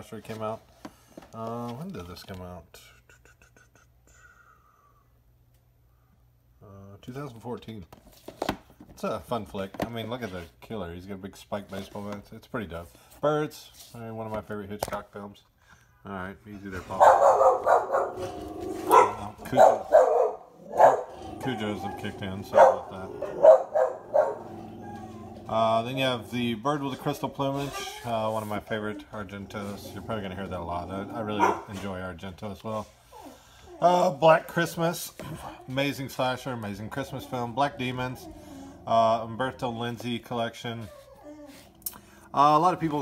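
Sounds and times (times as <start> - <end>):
dog barking: 17.0 - 24.5, 31.4 - 31.7.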